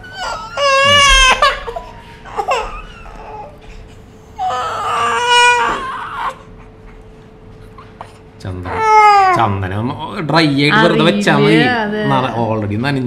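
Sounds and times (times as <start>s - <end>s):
baby crying: 0.0s - 6.6s, 8.6s - 9.6s.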